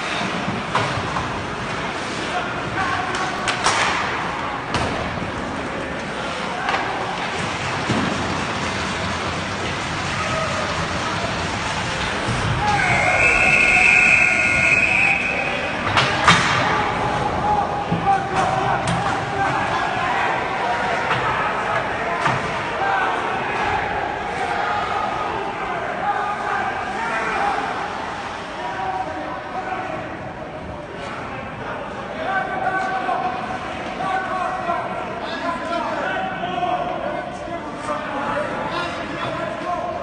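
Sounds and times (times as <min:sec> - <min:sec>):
crowd chatter: 0:00.0 - 0:40.0
scrape and clatter of hockey play: 0:05.1 - 0:12.6.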